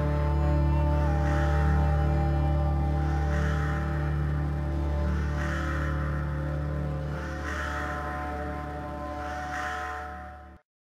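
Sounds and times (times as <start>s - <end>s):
dark ambient drone music: 0.0s - 10.6s.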